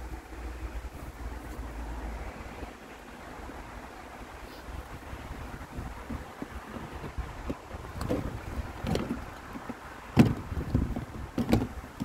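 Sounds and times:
wind on microphone: 3.4 - 12.0
sharp bumps: 6.0 - 12.0.

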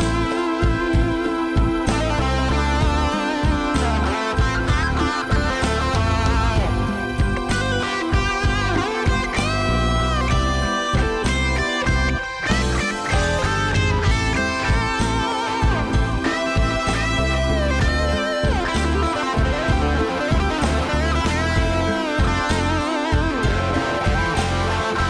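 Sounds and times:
backing band: 0.0 - 25.0
guitar lead melody: 0.0 - 25.0.

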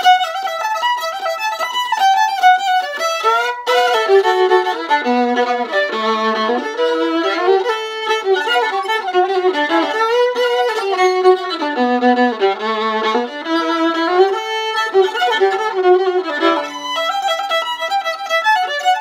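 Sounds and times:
solo violin melody: 0.0 - 19.0.

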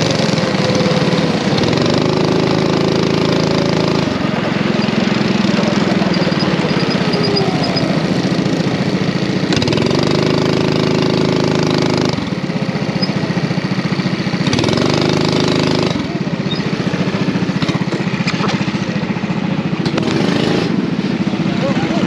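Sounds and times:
racing kart engine accelerating: 0.0 - 22.0.

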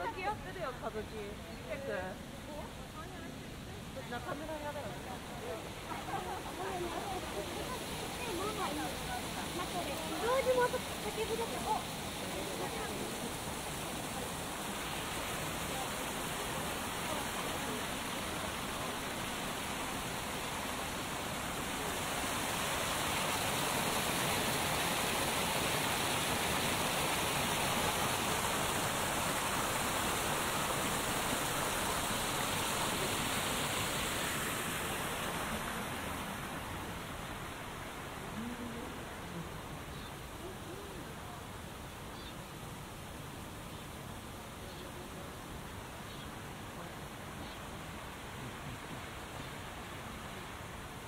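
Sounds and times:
waterfall pouring over rocks: 0.0 - 51.0.

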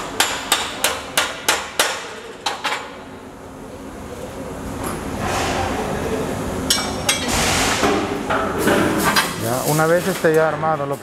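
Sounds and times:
hammer striking steel: 0.0 - 2.2.

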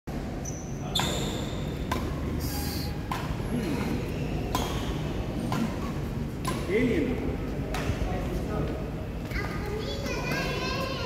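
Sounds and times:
racquets hitting shuttlecock: 0.9 - 2.4, 3.0 - 6.8, 7.5 - 8.2.

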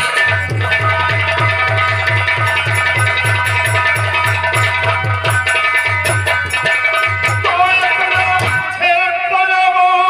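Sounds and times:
drum fast even beat: 0.0 - 9.0.

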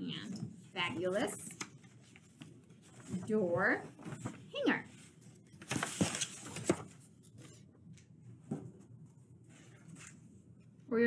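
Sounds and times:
paper rustle: 0.8 - 7.7.

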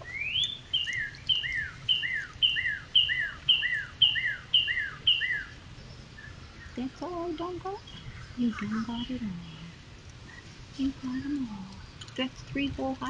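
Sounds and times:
songbird singing: 0.0 - 13.0.

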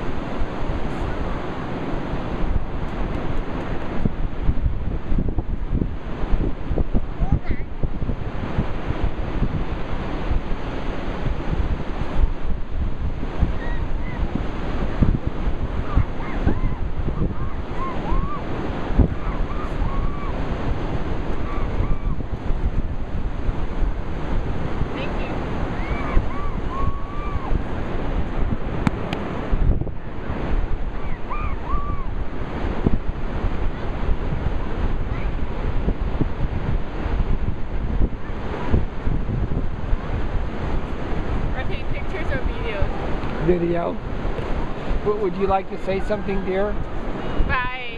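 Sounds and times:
ocean surf: 0.0 - 47.9
wind buffeting microphone: 0.0 - 47.9.

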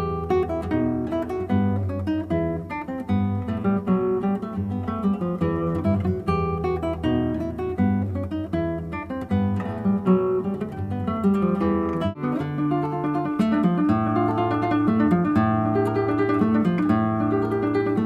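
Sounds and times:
classical guitar plucking: 0.0 - 18.0.

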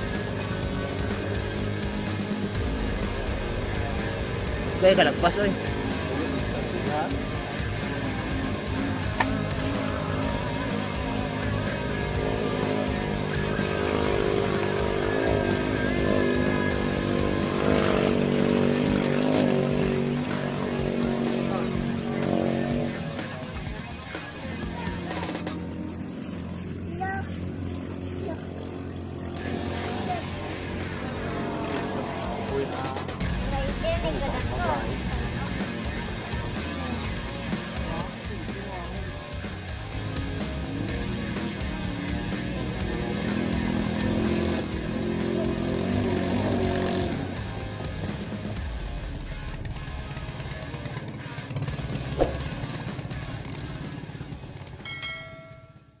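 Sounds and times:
boat engine droning: 0.0 - 33.8
low rumble: 1.4 - 10.2
bell ding: 54.8 - 56.0.

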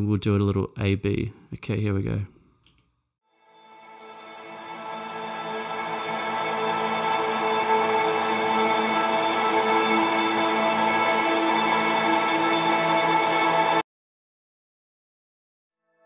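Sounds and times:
ambient electric guitar chord: 3.6 - 13.8.

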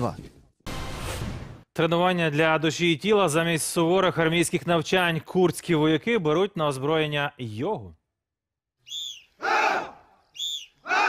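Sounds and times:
soldiers shouting in unison: 9.4 - 10.1.

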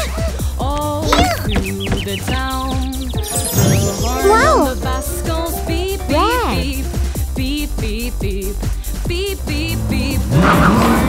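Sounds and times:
upbeat cartoon music: 0.0 - 11.0
tinkling sound effect: 3.2 - 4.9
high cartoon voice calling: 3.3 - 5.0, 6.0 - 6.8.

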